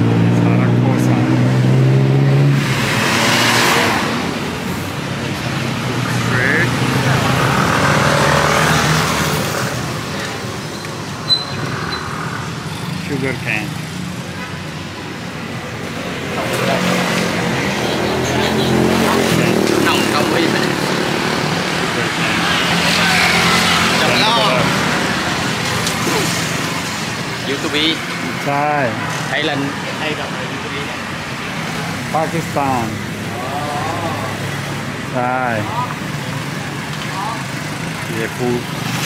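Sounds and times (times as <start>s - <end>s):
people's voices nearby: 0.0s - 11.4s, 12.5s - 38.8s
road traffic passing: 0.0s - 39.0s.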